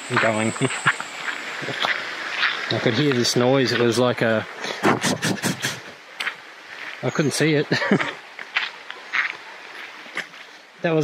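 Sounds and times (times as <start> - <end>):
man imitating a rasping noise: 4.8 - 5.9.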